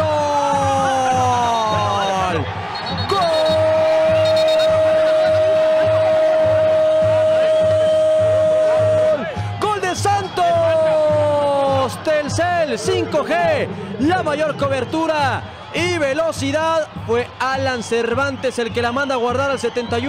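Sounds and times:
commentator long held shout: 0:00.0 - 0:17.4
excited rapid commentary: 0:00.0 - 0:20.0
steady low beat: 0:12.2 - 0:16.0.

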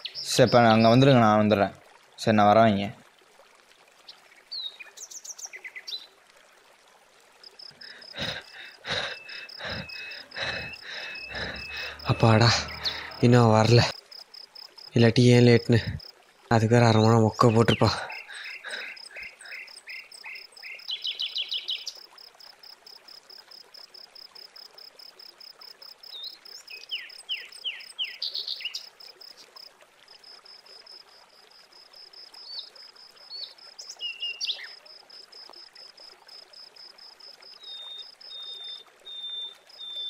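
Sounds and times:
insects chirping: 0:07.4 - 0:16.2, 0:17.4 - 0:40.0.

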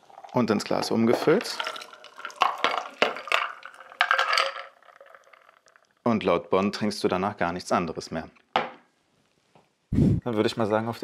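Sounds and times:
cocktail splashing into glass of ice: 0:01.3 - 0:05.7.

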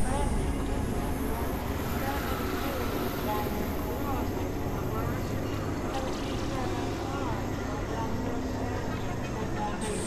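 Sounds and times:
noise drone with high hiss: 0:00.0 - 0:08.8.

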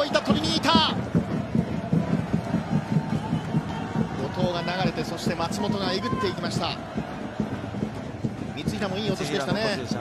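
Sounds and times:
fast rhythmic pulse: 0:00.0 - 0:10.0
stadium crowd noise: 0:00.0 - 0:10.0.

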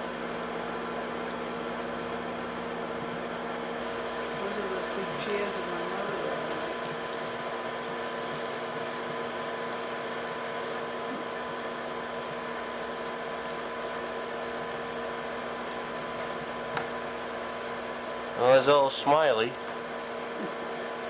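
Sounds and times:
film projector whirring: 0:00.0 - 0:21.0.

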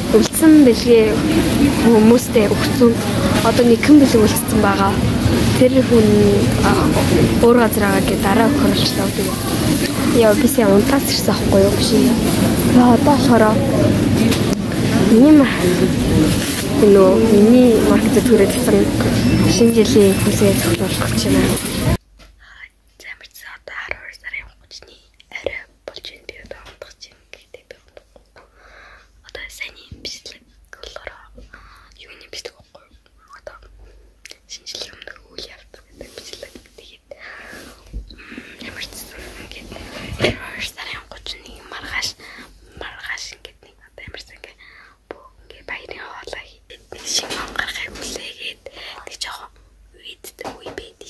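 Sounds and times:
person speaking: 0:00.0 - 0:22.0
girl whispering: 0:38.4 - 0:44.6, 0:45.2 - 0:51.0.

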